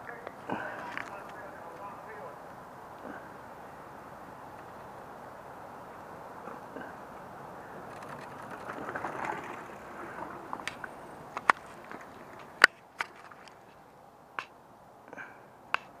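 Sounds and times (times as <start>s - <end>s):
bike tyres rolling on leafy dirt: 0.0s - 14.1s
sharp clicks and snaps: 14.4s - 14.6s, 15.7s - 16.0s.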